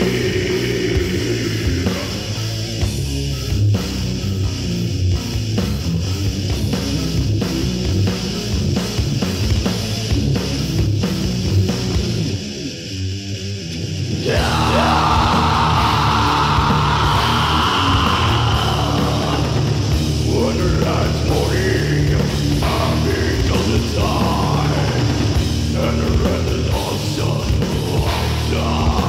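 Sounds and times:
death metal instrumental: 0:00.0 - 0:29.0.

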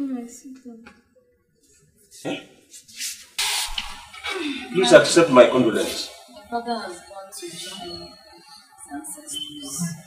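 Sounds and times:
loud even hiss: 0:03.0 - 0:04.5.

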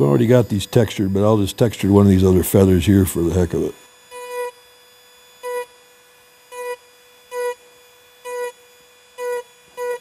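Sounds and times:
rotary carving tool whine: 0:00.0 - 0:10.0.

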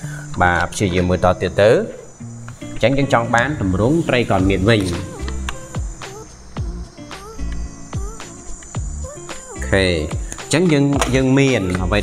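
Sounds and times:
background music held notes: 0:00.0 - 0:12.0
person speaking: 0:02.7 - 0:08.4, 0:09.6 - 0:12.0.

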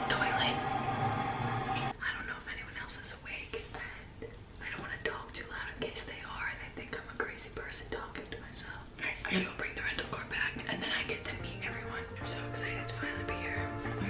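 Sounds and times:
woman whispering: 0:01.8 - 0:13.7.

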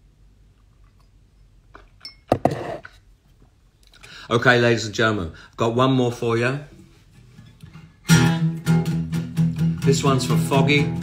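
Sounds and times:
acoustic guitar strumming: 0:07.2 - 0:11.0.

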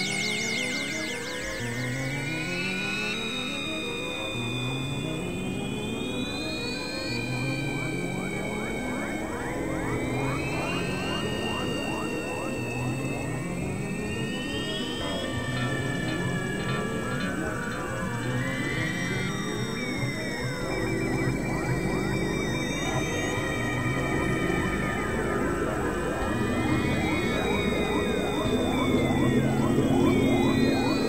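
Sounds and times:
ambient trance music: 0:00.0 - 0:31.0
rising synth sweeps: 0:00.0 - 0:31.0.

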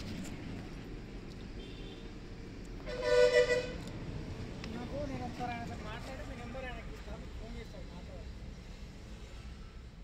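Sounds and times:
vehicle horn blast: 0:02.8 - 0:03.8.

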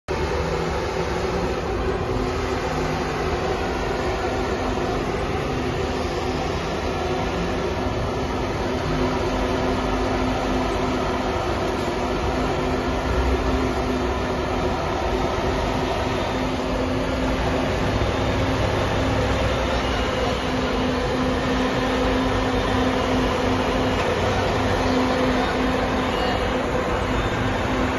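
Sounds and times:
bus engine running: 0:00.1 - 0:27.9.

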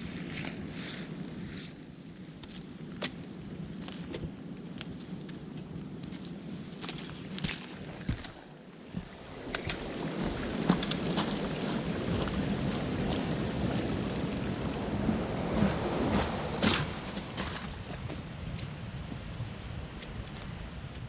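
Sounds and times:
footsteps on slushy path: 0:03.8 - 0:18.8
steady rushing noise: 0:06.8 - 0:21.0
trekking poles tapping: 0:07.4 - 0:11.8.

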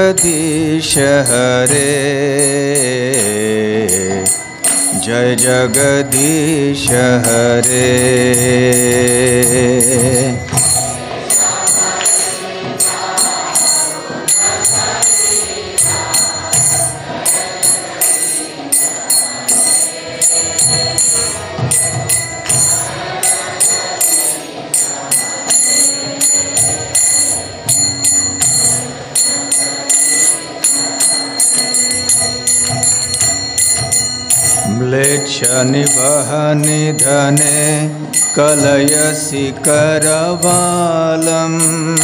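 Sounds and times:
devotional instrumental music: 0:00.0 - 0:42.0
hand cymbals struck: 0:00.0 - 0:42.0
person singing verses: 0:00.0 - 0:42.0.

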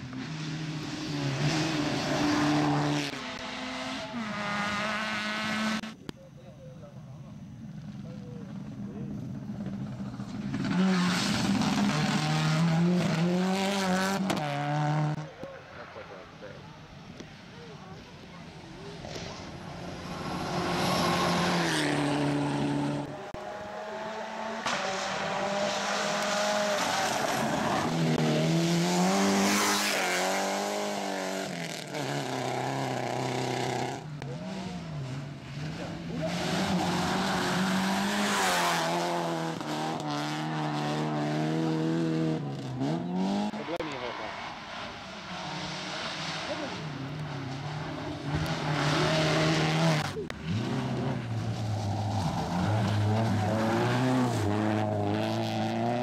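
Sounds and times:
rally car engines revving: 0:00.0 - 0:06.0, 0:07.4 - 0:56.0.

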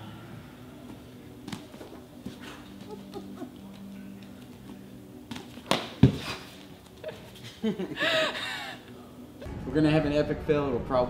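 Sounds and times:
kick thumps: 0:05.3 - 0:06.3.

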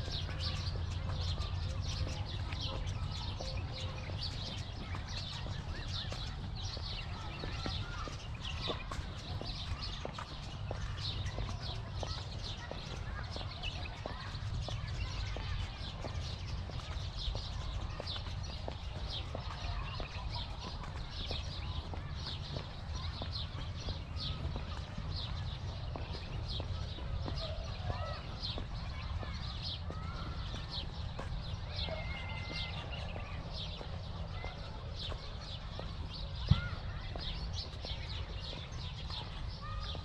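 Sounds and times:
footsteps on paving tiles: 0:00.0 - 0:40.0
small birds chirping: 0:00.0 - 0:40.0.

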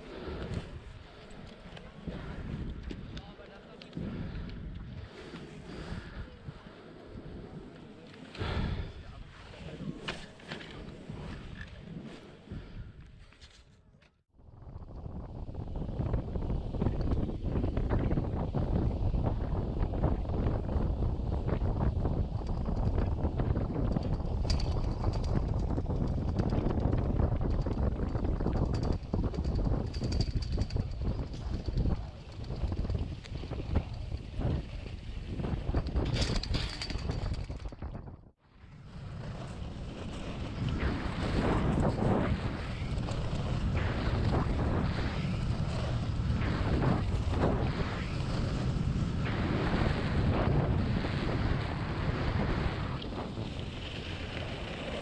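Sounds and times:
wind buffeting microphone: 0:00.0 - 0:10.0, 0:14.4 - 0:55.0
skis sliding on snow: 0:38.8 - 0:55.0.

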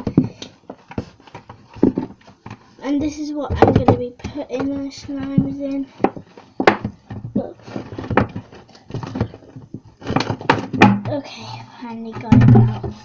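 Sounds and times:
scraping and rustling: 0:00.0 - 0:11.2
plastic tub knocks: 0:03.4 - 0:08.4, 0:10.1 - 0:11.2, 0:12.2 - 0:13.0.

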